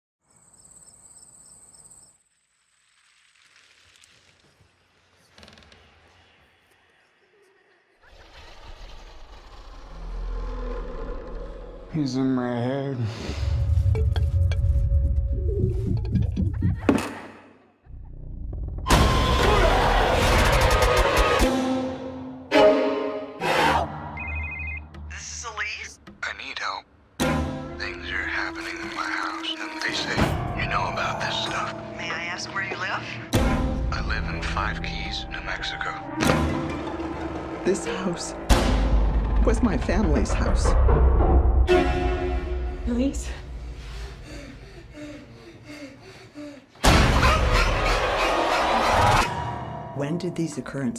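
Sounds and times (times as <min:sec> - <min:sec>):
cricket-like chirping: 0:00.2 - 0:04.9
telephone ringing: 0:24.2 - 0:24.9.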